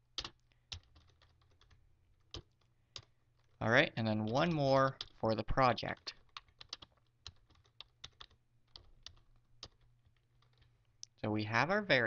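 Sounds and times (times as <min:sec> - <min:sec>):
keyboard typing: 0:00.1 - 0:11.0.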